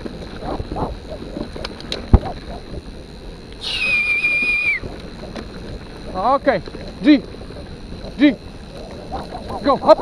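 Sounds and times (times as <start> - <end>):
mountain bike rolling over trail: 0.0 - 10.0
high steady whistle: 3.6 - 4.9.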